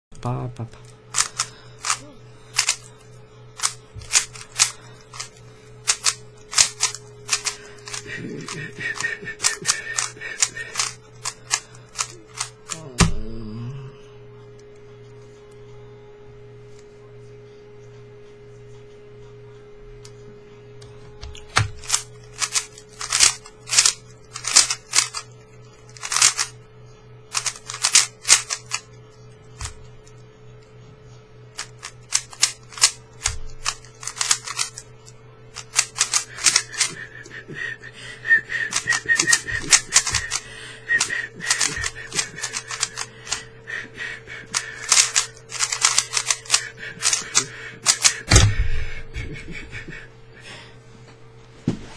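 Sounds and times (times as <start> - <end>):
puzzle cube clacking: 1.1 - 2.9, 3.6 - 12.8, 21.6 - 25.2, 26.0 - 26.5, 27.3 - 28.8, 31.6 - 34.8, 35.6 - 37.2, 38.6 - 43.4, 44.5 - 48.4.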